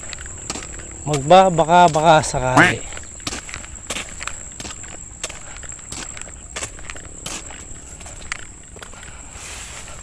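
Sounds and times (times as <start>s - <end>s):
boot footsteps on concrete: 0.5s - 9.0s.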